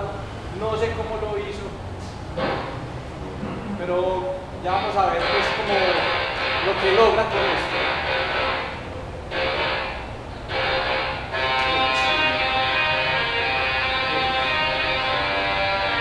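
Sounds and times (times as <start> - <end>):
musical tesla coil buzzing: 4.6 - 16.0.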